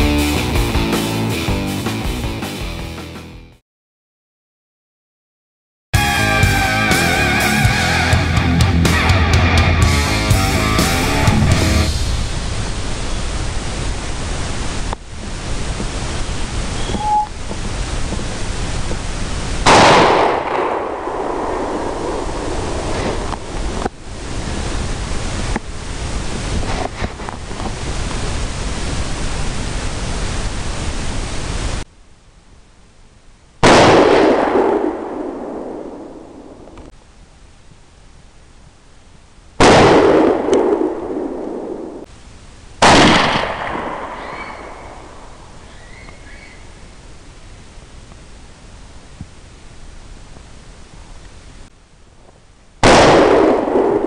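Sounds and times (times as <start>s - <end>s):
steady hiss: 10.0s - 33.7s, 40.6s - 54.0s
suppressed rifle shots: 19.7s - 22.1s, 33.6s - 36.4s, 39.6s - 41.9s, 42.8s - 45.0s, 52.8s - 54.0s.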